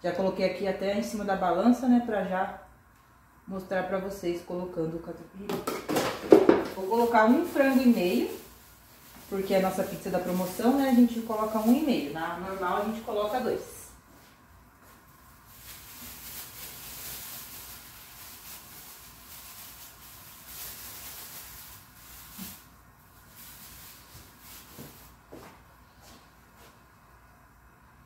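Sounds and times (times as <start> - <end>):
plastic bag rustling: 5.9 - 13.8, 14.8 - 25.5.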